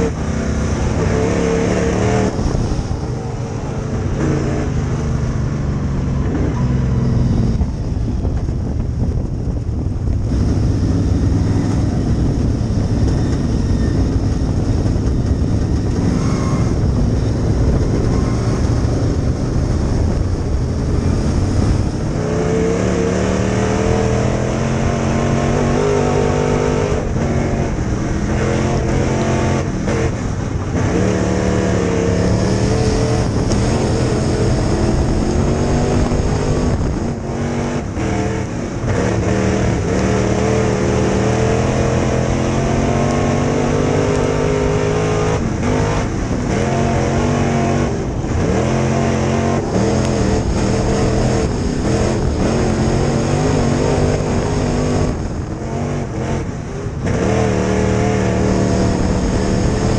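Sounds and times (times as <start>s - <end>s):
racing car engine revving: 0.0s - 7.8s, 8.4s - 59.9s.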